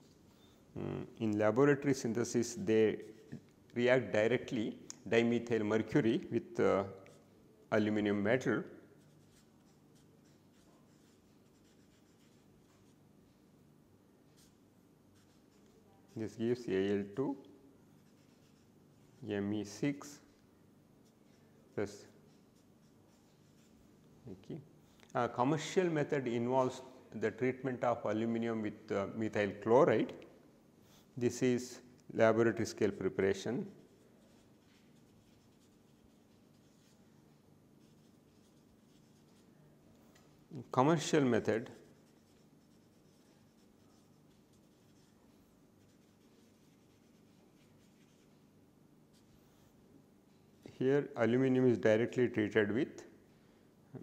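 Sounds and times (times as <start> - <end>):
marker scratching on paper: 9.0 - 13.0, 15.2 - 16.3, 17.9 - 19.0, 22.1 - 23.9, 33.7 - 37.0, 37.8 - 39.5, 41.3 - 48.4.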